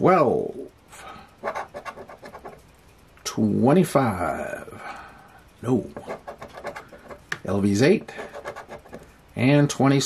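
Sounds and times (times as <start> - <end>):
scratcher scraping lottery ticket: 1.4 - 2.6, 5.8 - 9.1.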